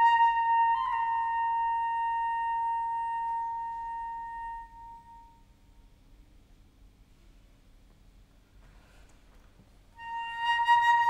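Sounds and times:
flute holding high note: 0.0s - 5.6s, 10.0s - 11.0s.

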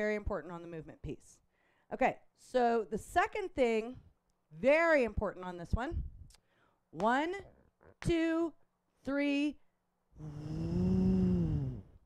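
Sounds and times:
woman humming zoom sound: 10.2s - 12.0s.

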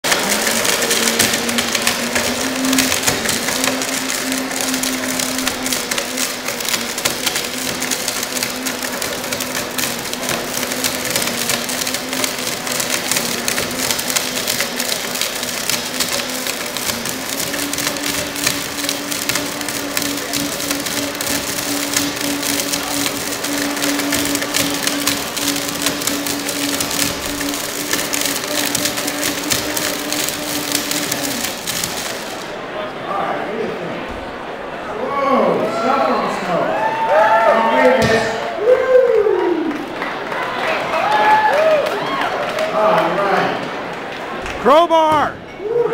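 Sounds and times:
crackling and grating in blender jar: 0.0s - 32.6s
blender motor running: 0.0s - 32.7s.

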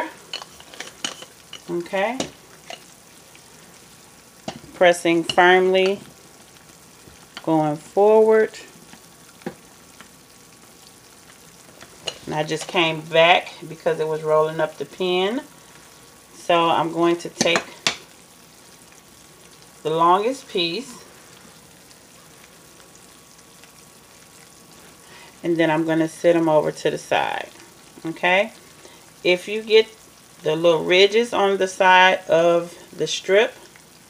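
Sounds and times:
faint steady hiss: 0.0s - 34.0s
sugar syrup sizzling: 0.0s - 34.0s.

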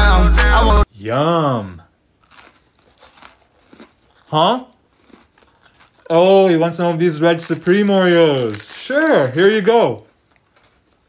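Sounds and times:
cookie crunching: 2.2s - 11.0s.

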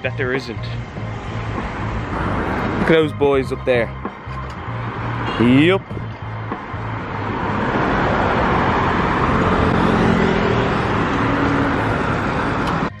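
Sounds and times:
cars passing: 0.0s - 13.0s
vehicle engine tone: 0.0s - 13.0s.

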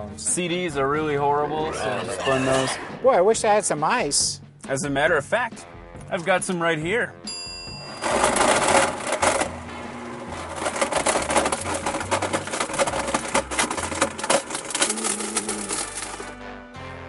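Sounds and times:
background music with bass line: 0.0s - 17.0s
blender smashing hard objects: 7.8s - 16.4s.

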